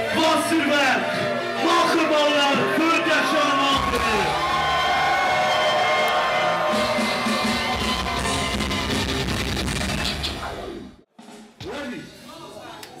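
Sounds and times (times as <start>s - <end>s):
bass-heavy live club music: 6.6s - 10.8s.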